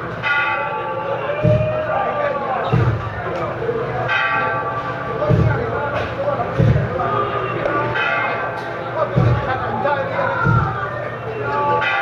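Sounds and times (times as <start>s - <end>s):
deep drum beat: 1.4s - 1.9s, 2.6s - 3.3s, 5.2s - 7.6s, 9.0s - 11.0s.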